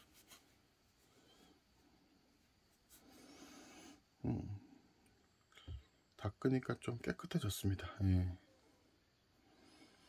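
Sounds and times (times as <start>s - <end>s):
tissue rubbing a coin: 0.0s - 1.1s.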